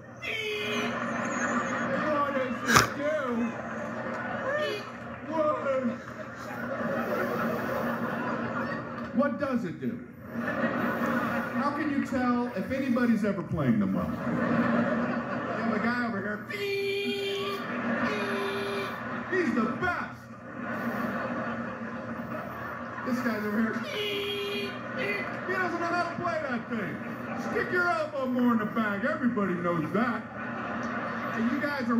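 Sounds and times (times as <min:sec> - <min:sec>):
audience laughing through tv speaker: 0:00.0 - 0:16.5, 0:17.1 - 0:31.9.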